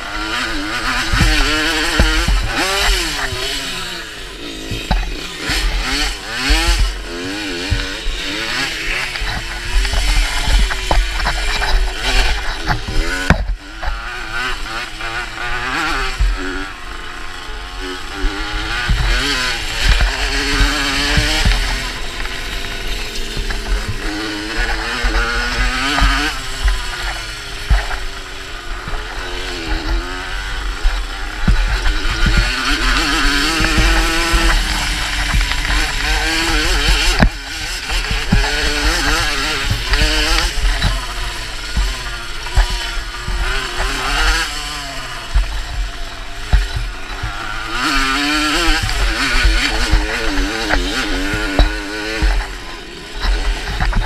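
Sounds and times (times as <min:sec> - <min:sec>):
moped engine revving: 0:00.0 - 0:54.0
knocks from bumps: 0:30.8 - 0:45.8.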